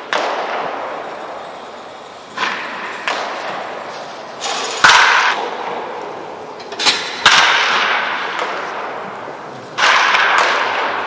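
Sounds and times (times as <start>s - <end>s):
baseball bat hitting ball: 0.0s - 1.4s, 2.3s - 9.0s, 9.7s - 11.0s.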